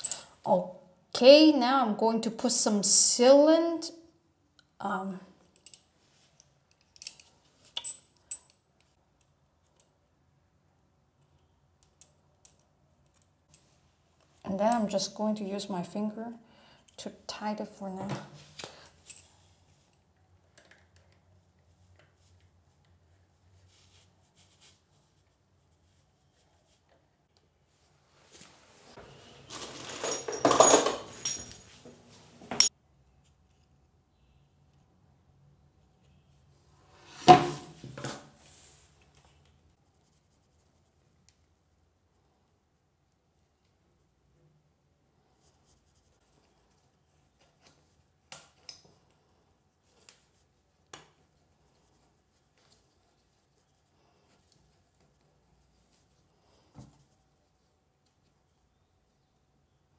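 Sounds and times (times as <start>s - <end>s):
metal fittings clinking and rattling: 6.7s - 8.6s, 29.5s - 31.8s.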